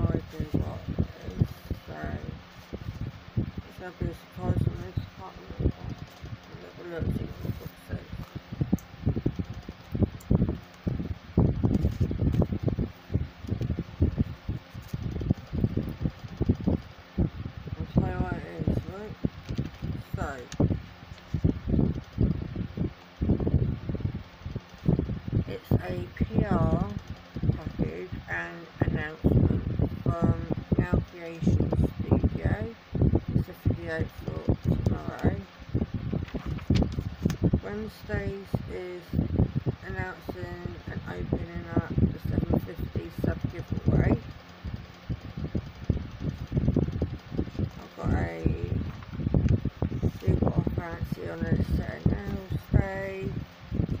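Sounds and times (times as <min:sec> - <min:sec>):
ceiling fan whoosh: 0:00.0 - 0:54.0
wind buffeting microphone: 0:00.0 - 0:54.0.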